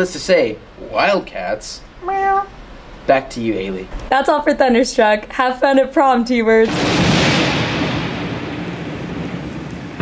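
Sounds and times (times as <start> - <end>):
rain hissing: 6.6 - 10.0
rolling thunder: 6.6 - 10.0.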